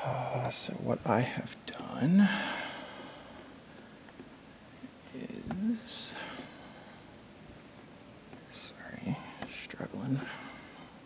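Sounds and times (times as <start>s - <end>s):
person whispering: 8.5s - 10.4s.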